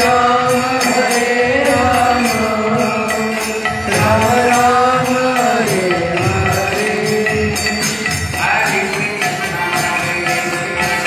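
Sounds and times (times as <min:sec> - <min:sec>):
percussion beat: 0:00.0 - 0:11.0.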